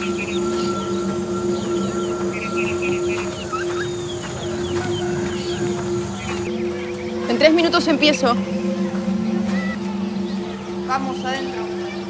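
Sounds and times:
birds chirping: 0:00.0 - 0:12.0
low music drone: 0:00.0 - 0:12.0.

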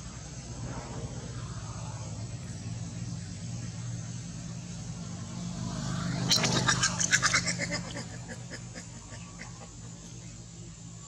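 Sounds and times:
steady low hum: 0:00.0 - 0:11.0
monkey squealing chatter: 0:06.2 - 0:10.0.

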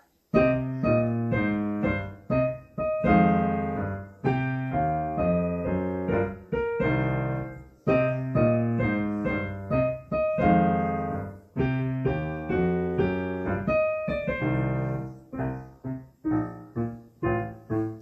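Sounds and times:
digital piano jazz duet: 0:00.0 - 0:18.0.

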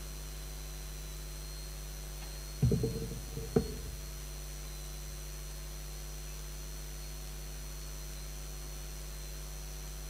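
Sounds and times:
electrical mains hum: 0:02.6 - 0:04.2
microphone hiss: 0:02.6 - 0:04.3.

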